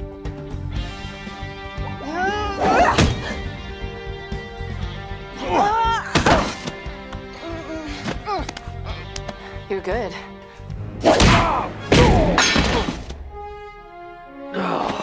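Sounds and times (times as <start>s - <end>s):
background music: 0.0s - 15.0s
fighters grunting and crying out: 1.8s - 3.5s, 5.3s - 9.1s, 11.0s - 13.1s
punch hits: 11.0s - 13.1s.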